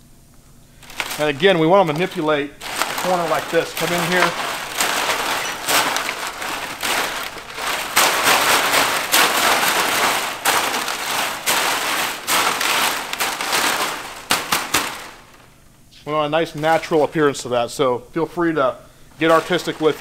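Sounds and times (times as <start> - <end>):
synthetic thatch rustling and crackling: 0.8 - 15.6, 19.2 - 20.0.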